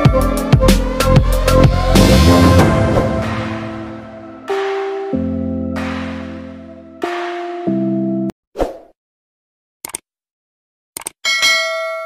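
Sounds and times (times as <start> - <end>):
background music with chords: 0.0 - 8.3.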